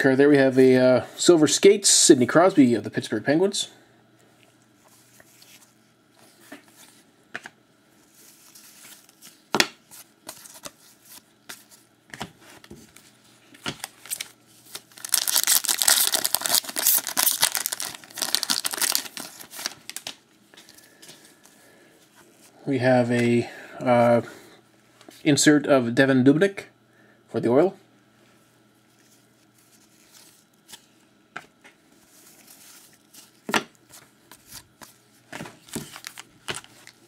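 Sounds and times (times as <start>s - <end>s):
card pack wrapper tearing: 13.8s - 20.2s, 35.6s - 37.0s.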